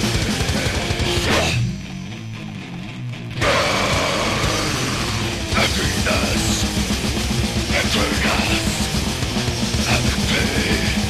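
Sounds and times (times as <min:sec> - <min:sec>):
distorted guitar and bass: 0:00.0 - 0:11.0
grindcore band with drums: 0:00.0 - 0:11.0.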